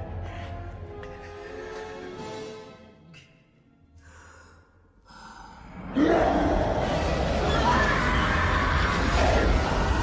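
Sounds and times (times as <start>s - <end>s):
faint breaths: 4.0s - 5.9s.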